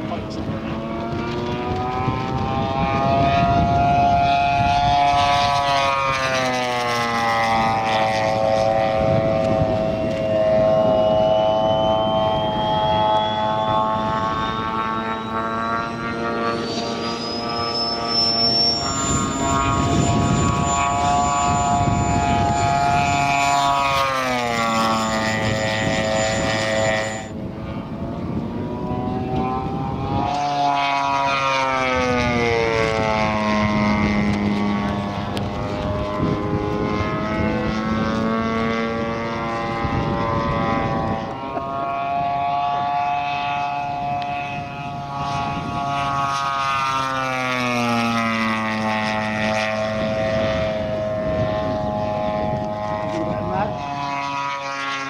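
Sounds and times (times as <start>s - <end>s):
model plane engine in flight: 0.0s - 55.0s.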